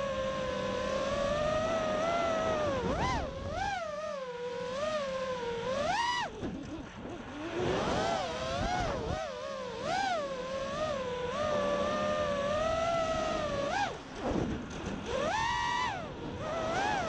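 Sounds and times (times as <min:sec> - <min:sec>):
quadcopter motors whining: 0:00.0 - 0:17.0.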